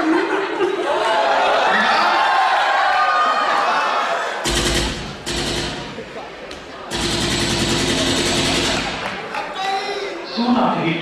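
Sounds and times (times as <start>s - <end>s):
rapid rattling pulses over speakers: 4.4s - 6.2s, 6.9s - 9.3s.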